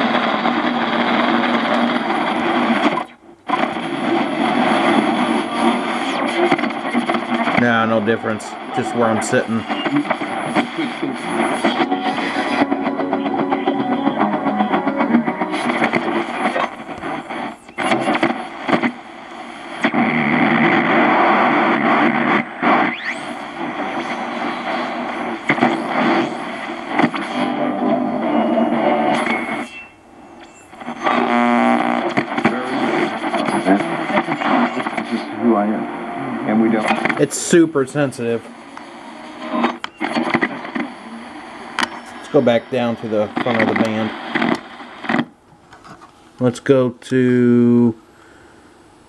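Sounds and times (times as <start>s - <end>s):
radio broadcast voices: 0.0s - 29.9s, 30.6s - 45.3s, 46.4s - 48.0s
radio static: 0.0s - 48.0s.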